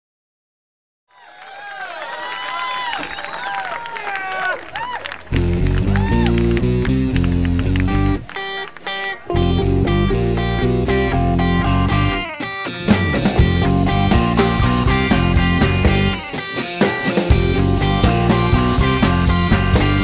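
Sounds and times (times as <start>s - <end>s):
electric guitar and bass chords: 5.3s - 20.0s
drums: 11.4s - 20.0s.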